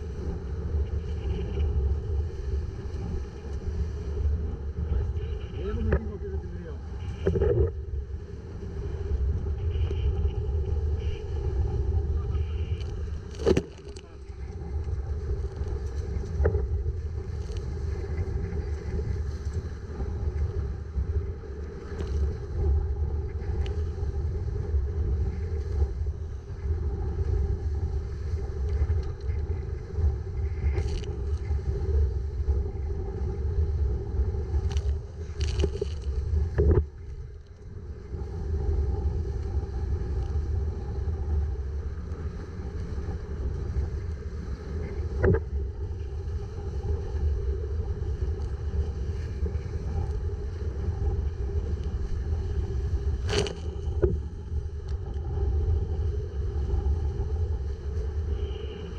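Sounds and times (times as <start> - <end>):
wind buffeting microphone: 0.0 - 58.9.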